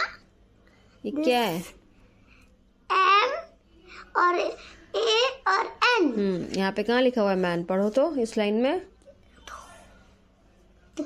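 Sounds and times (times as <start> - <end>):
faint whisper: 9.2 - 11.0.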